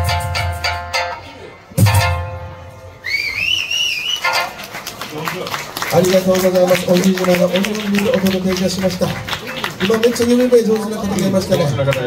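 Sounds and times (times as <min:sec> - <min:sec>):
shrill finger whistle: 0:03.0 - 0:04.5
audience clapping: 0:03.4 - 0:12.0.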